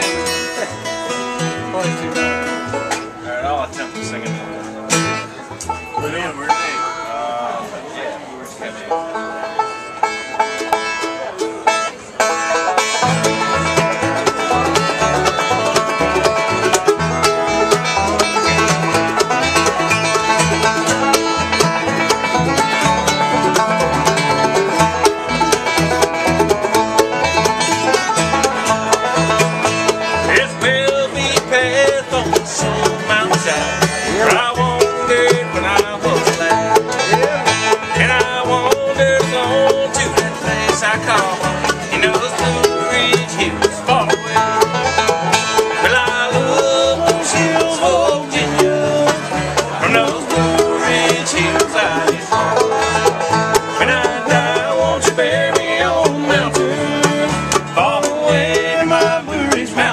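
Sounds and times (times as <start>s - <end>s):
banjo picking: 0.0s - 59.9s
bluegrass band playing: 0.0s - 59.9s.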